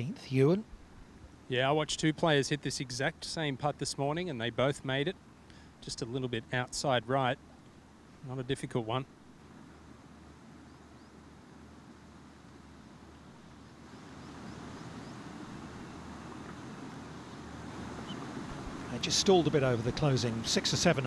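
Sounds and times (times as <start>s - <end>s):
steady outdoor hiss: 0.0s - 21.0s.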